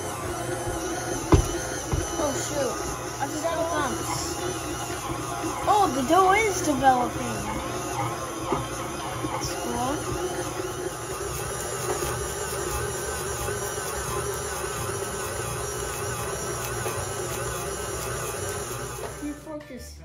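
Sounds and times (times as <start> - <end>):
stand mixer kneading dough: 0.0 - 19.4.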